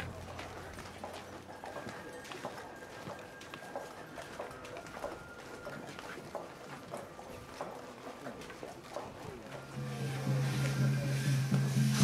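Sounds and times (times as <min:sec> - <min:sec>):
footsteps clacking and tapping: 0:00.0 - 0:10.9.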